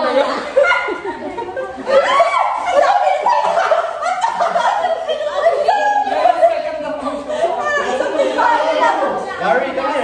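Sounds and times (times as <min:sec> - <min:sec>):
group of adults laughing: 0:00.0 - 0:09.2.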